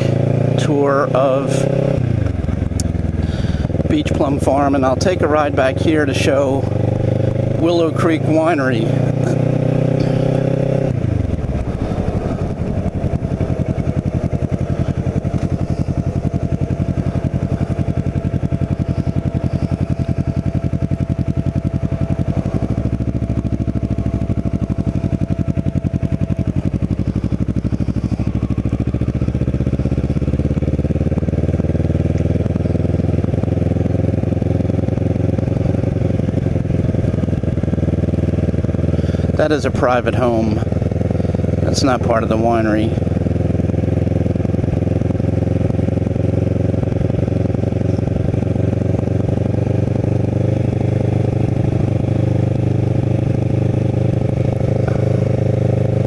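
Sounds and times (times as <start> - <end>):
motorcycle engine: 0.0 - 56.0.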